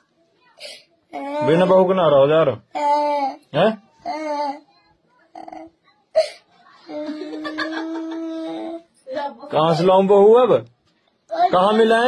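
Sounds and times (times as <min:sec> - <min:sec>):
boy crying and sobbing: 0:00.6 - 0:01.7, 0:02.7 - 0:03.4, 0:04.0 - 0:04.7, 0:05.3 - 0:09.3.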